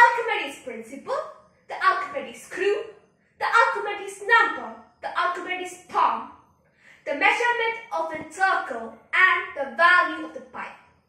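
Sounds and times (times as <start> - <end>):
girl talking: 0.0 - 6.4, 7.1 - 10.7.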